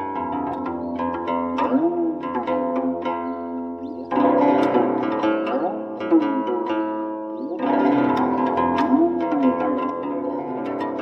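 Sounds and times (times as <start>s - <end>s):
plucked zither with bending notes: 0.0s - 11.0s.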